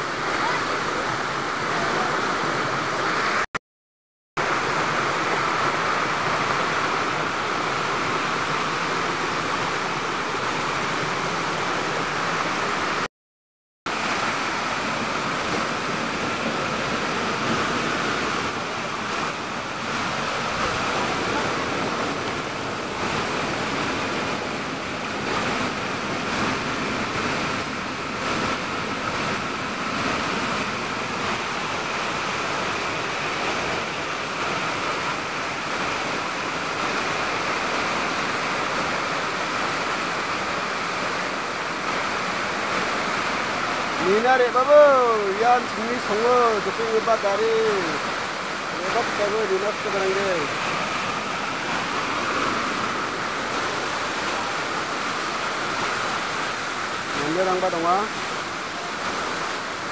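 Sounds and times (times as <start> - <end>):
water rushing over rocks: 0.0 - 3.5, 4.4 - 13.1, 13.9 - 59.9.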